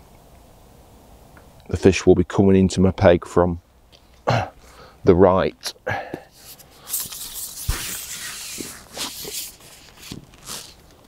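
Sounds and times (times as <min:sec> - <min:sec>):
fishing pole sliding hiss: 0:06.3 - 0:10.8.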